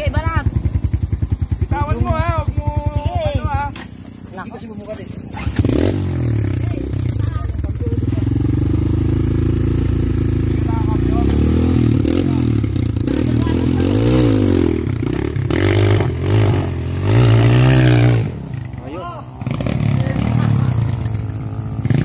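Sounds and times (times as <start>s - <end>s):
motorcycle engine revving: 0.0s - 22.0s.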